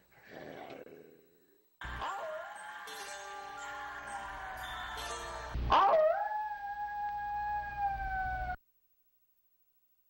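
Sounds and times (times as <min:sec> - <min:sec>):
wolf howling: 0:05.7 - 0:08.6.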